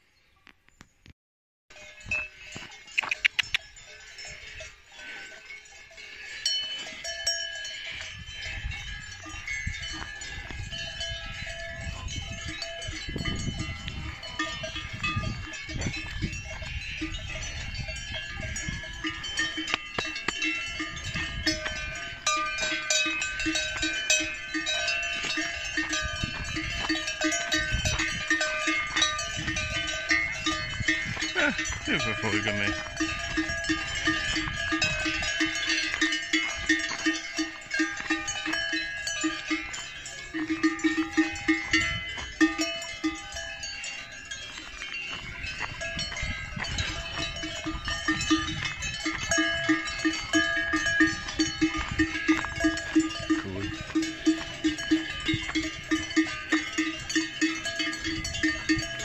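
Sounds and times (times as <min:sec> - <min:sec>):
cowbells clanking: 0:01.7 - 0:59.0.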